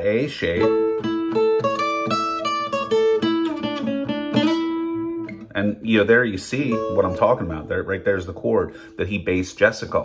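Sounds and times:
acoustic guitar blues lick: 0:00.0 - 0:10.0.

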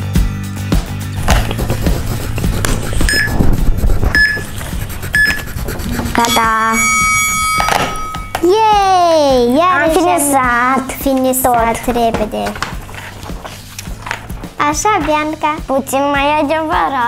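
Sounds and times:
background music: 0:00.0 - 0:17.0
stepped electronic tone: 0:03.0 - 0:08.4
short electronic beeps: 0:03.1 - 0:03.4, 0:04.2 - 0:04.5, 0:05.2 - 0:05.5, 0:06.2 - 0:08.4.

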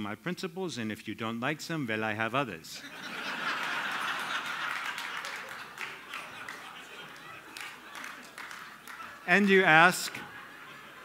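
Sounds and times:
audience laughing: 0:02.8 - 0:11.0
audience applauding: 0:02.9 - 0:11.0.

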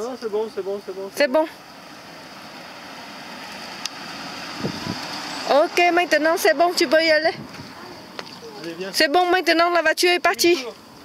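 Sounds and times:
car driving slowly: 0:00.0 - 0:11.0.

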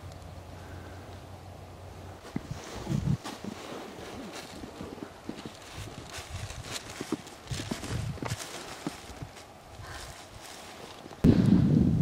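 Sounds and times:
wind rumble on microphone: 0:02.2 - 0:03.2, 0:04.0 - 0:08.4, 0:11.1 - 0:12.0.

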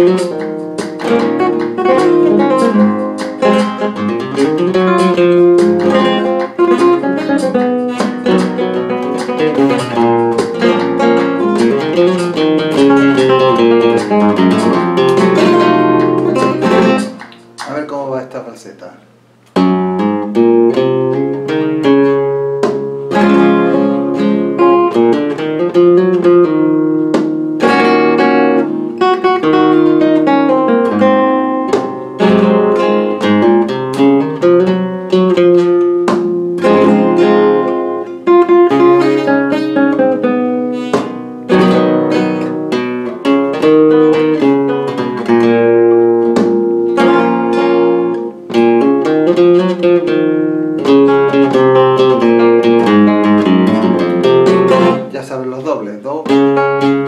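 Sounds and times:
flamenco guitar playing: 0:00.0 - 0:57.0.

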